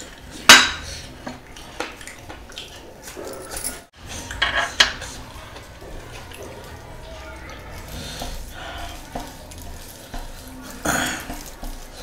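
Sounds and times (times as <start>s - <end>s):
ceramic dishes clinking: 0.4s - 0.9s.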